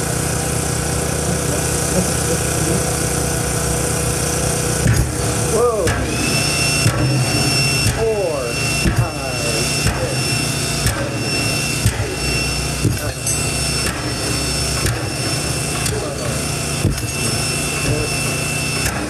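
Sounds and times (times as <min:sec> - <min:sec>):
steady high tone: 0:00.0 - 0:18.8
low motor hum: 0:00.0 - 0:19.0.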